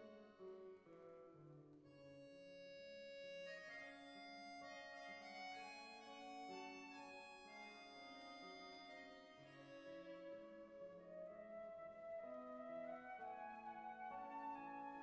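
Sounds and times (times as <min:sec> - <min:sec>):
accordion chords: 0:01.9 - 0:10.3
violin: 0:01.9 - 0:11.0
flute: 0:03.6 - 0:15.0.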